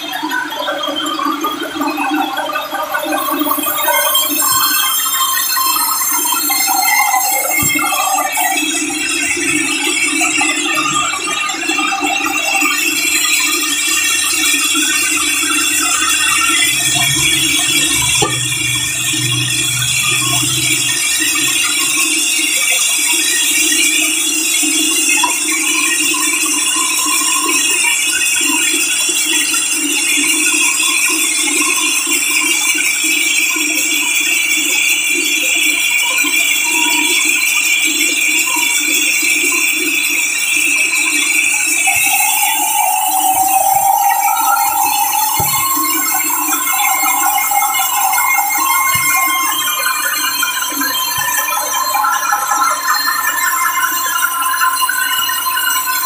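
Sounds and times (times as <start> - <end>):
higher saw tone: 14.3 - 22.5, 41.9 - 51.0
band saw cutting wood: 15.4 - 22.2.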